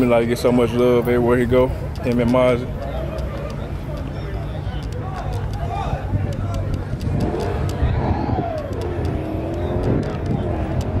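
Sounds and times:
continuous low rumble: 0:00.0 - 0:11.0
voices in background: 0:00.0 - 0:11.0
car engine revving: 0:06.9 - 0:11.0.

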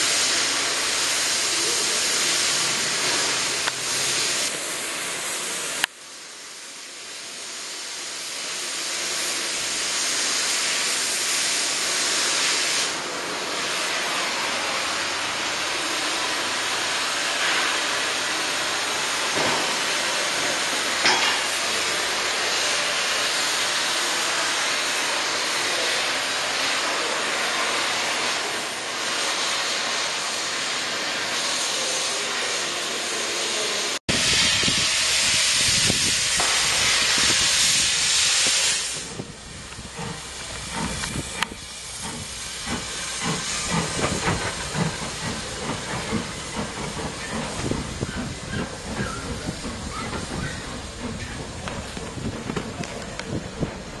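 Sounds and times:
cutting torch hissing: 0:00.0 - 0:54.0.

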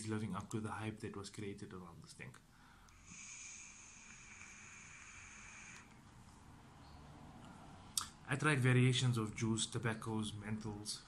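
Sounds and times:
soft breath: 0:02.5 - 0:08.0
airy hiss with high whistle: 0:03.0 - 0:05.9.

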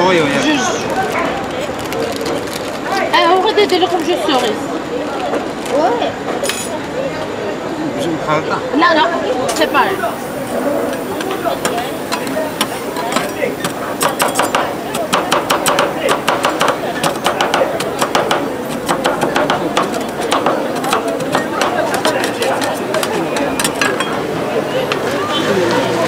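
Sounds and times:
metal spatulas tapping and scraping: 0:10.9 - 0:24.2.

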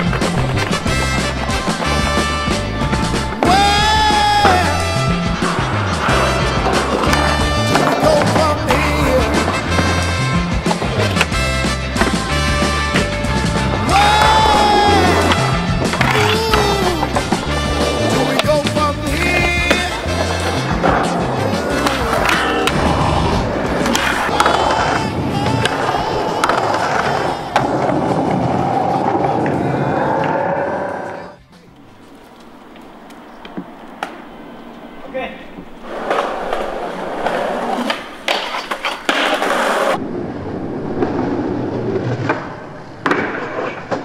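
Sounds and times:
skateboard clacks: 0:00.0 - 0:30.3, 0:35.4 - 0:40.0, 0:41.9 - 0:44.0
skateboard wheels rolling on concrete: 0:00.0 - 0:44.0.

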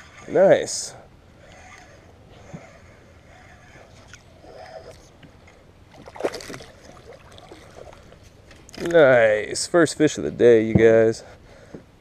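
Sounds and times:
soft water sounds: 0:01.0 - 0:10.2
fish splashing in water: 0:05.9 - 0:08.2.

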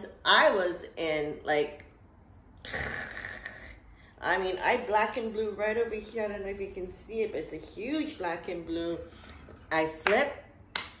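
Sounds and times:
woman speaking: 0:00.0 - 0:01.9, 0:04.2 - 0:10.5.

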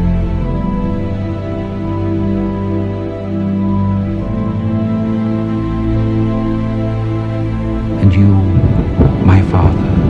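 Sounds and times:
music: 0:00.0 - 0:10.0
deep rumble: 0:03.4 - 0:10.0.

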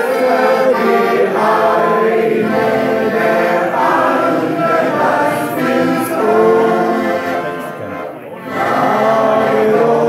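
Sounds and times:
group singing in chorus: 0:00.0 - 0:07.5, 0:08.4 - 0:10.0
piano accordion: 0:00.0 - 0:10.0.

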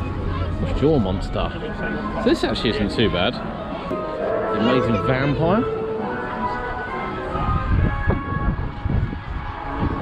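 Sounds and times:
faint music: 0:00.0 - 0:10.0
wind gusts on microphone: 0:06.8 - 0:10.0.

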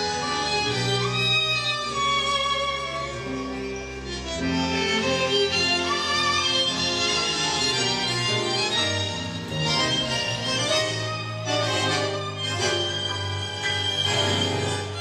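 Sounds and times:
tango music: 0:00.0 - 0:15.0.

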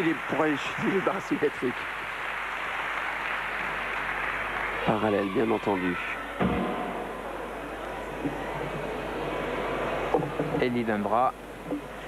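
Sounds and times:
murmur of crowd: 0:00.0 - 0:12.0.

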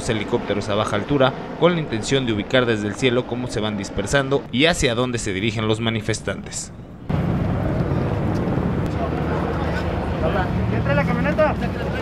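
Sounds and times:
low engine drone: 0:00.0 - 0:12.0
voices: 0:07.6 - 0:12.0.

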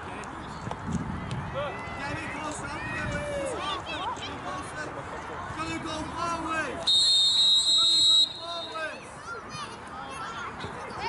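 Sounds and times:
referee's whistle blast: 0:06.9 - 0:08.9.

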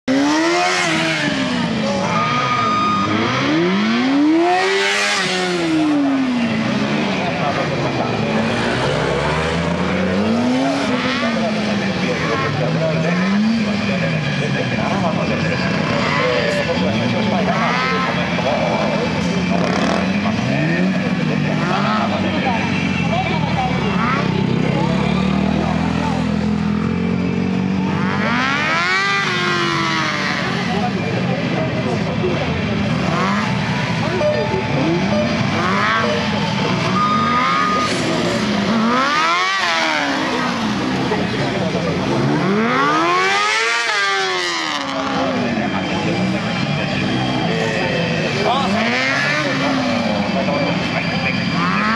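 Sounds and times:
motorcycle engine revving: 0:00.0 - 0:51.9.

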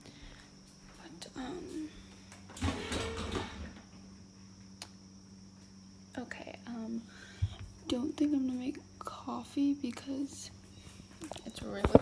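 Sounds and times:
steady low hum: 0:00.0 - 0:12.0
kitchen rustling clatter: 0:02.5 - 0:03.8.

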